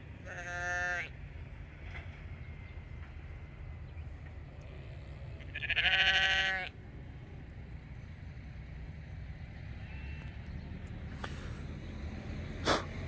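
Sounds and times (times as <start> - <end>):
sheep bleating: 0.2 - 1.1, 5.4 - 6.7.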